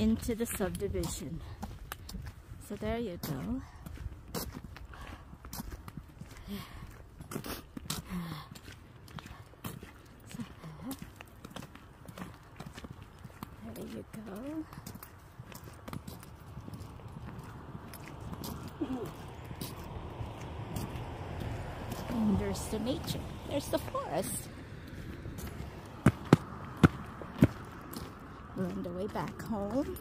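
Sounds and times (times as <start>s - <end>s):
boot footsteps on wet concrete: 0.0s - 30.0s
passing car tyre noise: 16.4s - 28.6s.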